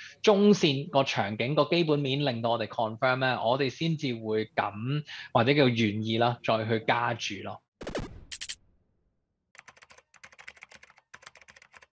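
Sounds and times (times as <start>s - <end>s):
keyboard typing clicks: 9.6s - 11.9s.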